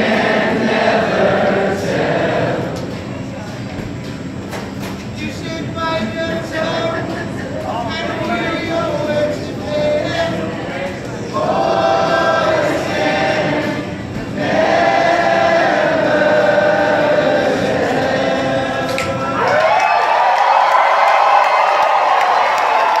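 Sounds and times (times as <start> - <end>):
voices singing held notes: 0.0 - 3.1, 7.9 - 19.4
guitar: 0.0 - 19.8.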